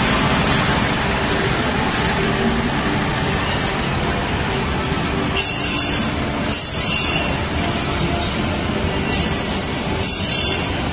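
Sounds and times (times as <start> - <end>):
train coaches rumbling on track: 0.0 - 10.9
train wheels squealing: 5.4 - 8.4, 9.0 - 10.8.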